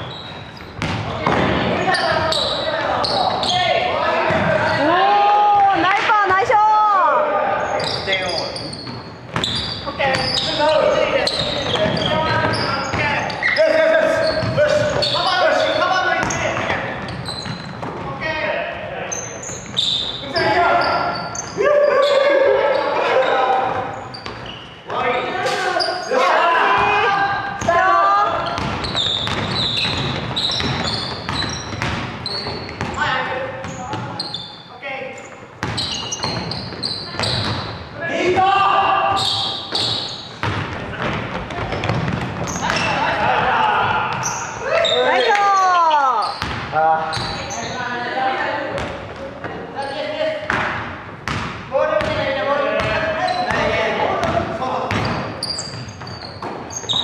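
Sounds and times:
basketball bouncing on wooden floor: 0:00.6 - 0:02.2, 0:08.9 - 0:10.3, 0:11.3 - 0:13.1, 0:16.2 - 0:18.1, 0:28.4 - 0:33.0, 0:35.6 - 0:37.8, 0:39.7 - 0:42.9, 0:46.4 - 0:47.4, 0:50.5 - 0:52.2, 0:52.8 - 0:57.0
players shouting: 0:01.8 - 0:07.9, 0:20.2 - 0:24.1, 0:24.9 - 0:28.6, 0:38.0 - 0:39.7, 0:42.5 - 0:46.4.

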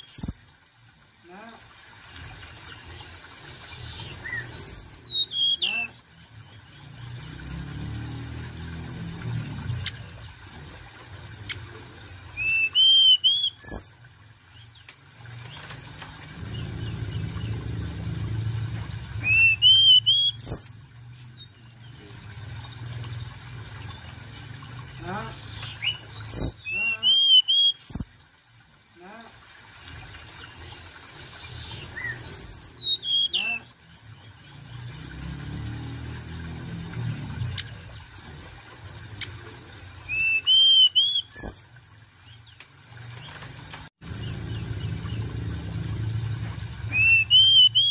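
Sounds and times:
bird singing whistles: 0:04.2 - 0:05.9, 0:12.4 - 0:13.9, 0:19.2 - 0:20.8, 0:25.8 - 0:28.0, 0:32.0 - 0:33.6, 0:40.1 - 0:41.6, 0:46.9 - 0:47.9
low background rumble: 0:16.2 - 0:19.6.

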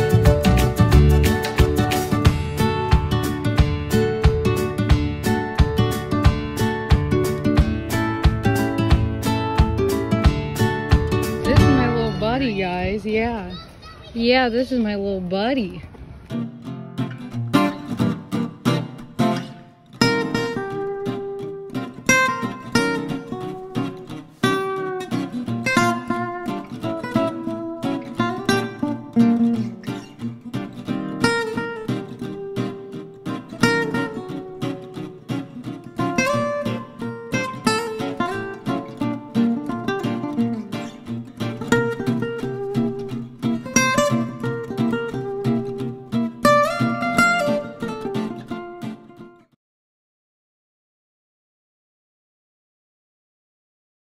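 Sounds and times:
acoustic guitar piece: 0:00.0 - 0:49.6.

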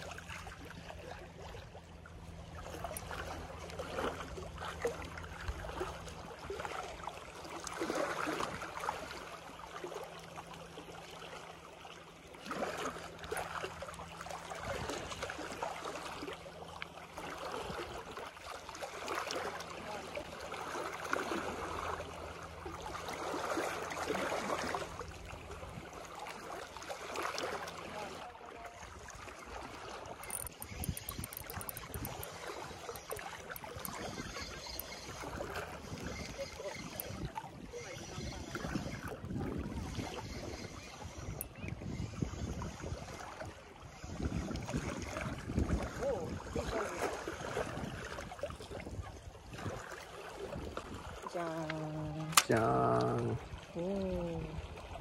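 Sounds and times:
small waves lapping against seawall: 0:00.0 - 0:55.0.

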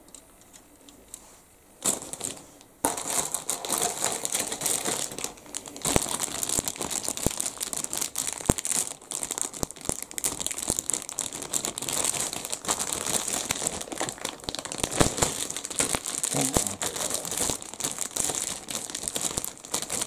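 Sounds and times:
plastic bag crinkling: 0:01.8 - 0:20.0.

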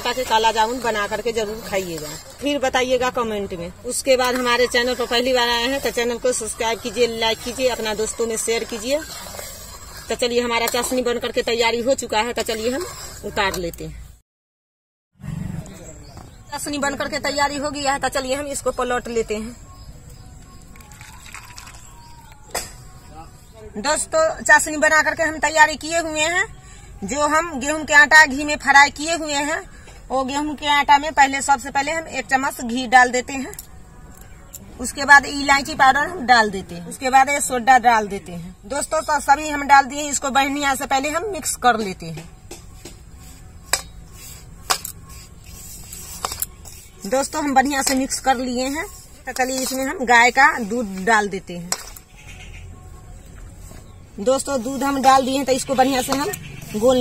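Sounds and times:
flour rustling in bowl: 0:43.2 - 0:51.1.

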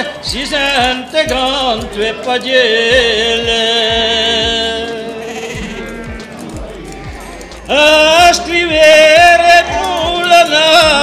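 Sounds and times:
sheep bleating: 0:00.0 - 0:11.0
song accompaniment with low thuds: 0:00.0 - 0:11.0.

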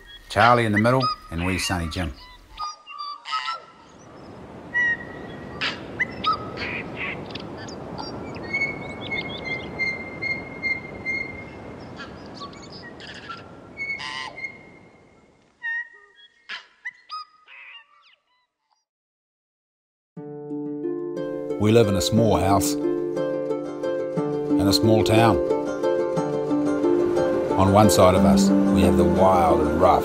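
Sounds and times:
birds chirping and calling: 0:00.0 - 0:18.5, 0:26.5 - 0:30.0
long pulsing bird note: 0:25.4 - 0:30.0.

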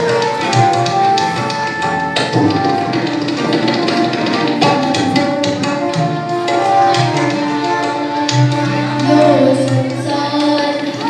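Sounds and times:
harmonium: 0:00.0 - 0:11.0
tabla: 0:00.0 - 0:11.0
child singing into a microphone: 0:09.0 - 0:11.0.

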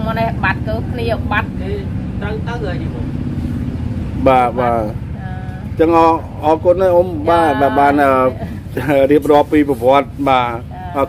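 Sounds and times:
woman talking: 0:00.0 - 0:02.5, 0:04.6 - 0:05.8, 0:07.2 - 0:08.6, 0:10.6 - 0:11.0
low mechanical hum: 0:00.0 - 0:11.0.

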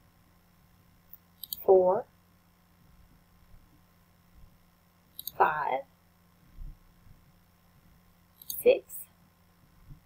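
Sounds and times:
computer mouse clicks: 0:01.1 - 0:01.6, 0:05.1 - 0:05.4, 0:08.4 - 0:08.7.

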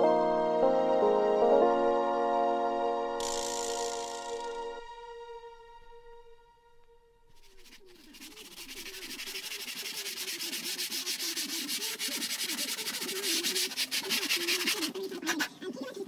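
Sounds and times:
hand file rasping on laminate: 0:07.4 - 0:15.6.

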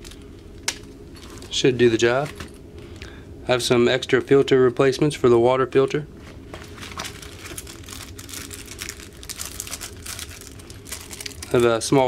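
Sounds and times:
low steady hum: 0:00.0 - 0:12.0
rustling of fabric pouch: 0:06.6 - 0:11.6
plastic packaging crinkling: 0:06.6 - 0:12.0.

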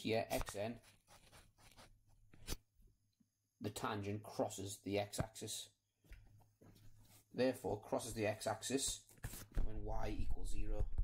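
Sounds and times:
stylus scratching on tablet: 0:00.3 - 0:02.0.

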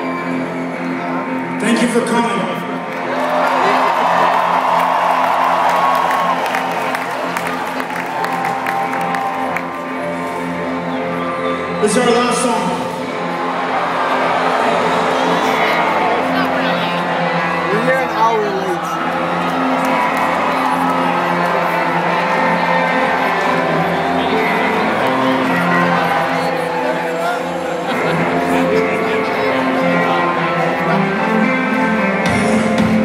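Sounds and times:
amplified rock band: 0:00.0 - 0:33.0
crowd cheering and whooping: 0:02.9 - 0:10.7, 0:13.2 - 0:30.7.

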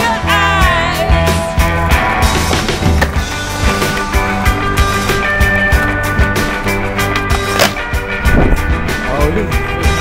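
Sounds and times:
skateboard rolling on brick paving: 0:02.2 - 0:07.8
skateboard clack: 0:07.1 - 0:07.8.

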